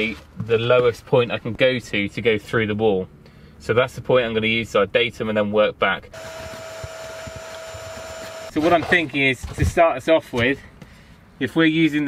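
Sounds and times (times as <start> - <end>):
small electric motor whining: 6.2 - 8.6.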